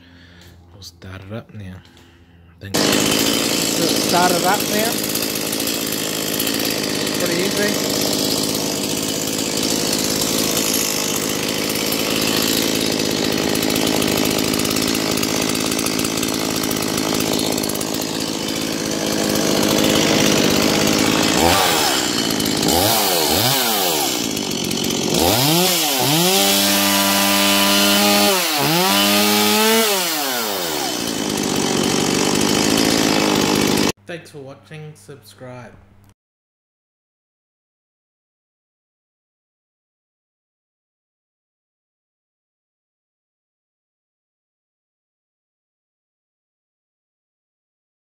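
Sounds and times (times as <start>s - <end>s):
chainsaw idling and revving: 2.7s - 34.0s.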